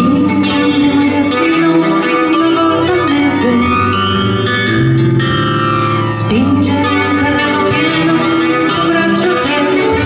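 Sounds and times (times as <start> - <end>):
electric guitar: 0.0 - 10.0
live band playing: 0.0 - 10.0.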